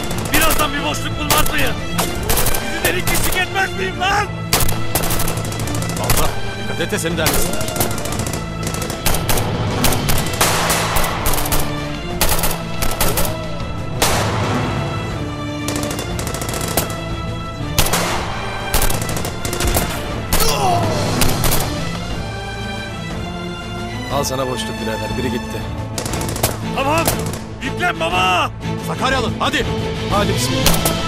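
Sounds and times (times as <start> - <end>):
dramatic background music: 0.0 - 31.0
rifle gunfire bursts: 4.5 - 6.5, 7.3 - 13.4, 15.7 - 17.1, 17.7 - 20.4, 26.0 - 27.5.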